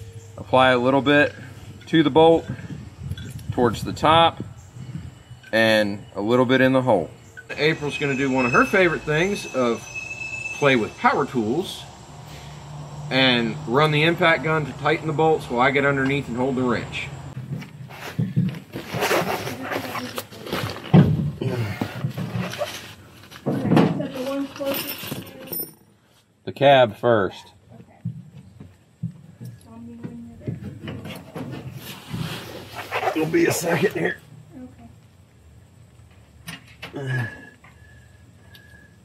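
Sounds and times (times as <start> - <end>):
indistinct talking: 5.8 - 17.2
rustling and handling noises: 17.4 - 26.2.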